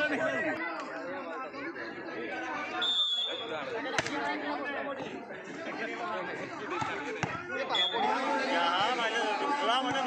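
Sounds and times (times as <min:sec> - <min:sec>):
chatter of people: 0:00.0 - 0:10.0
referee whistle blast: 0:02.8 - 0:03.5.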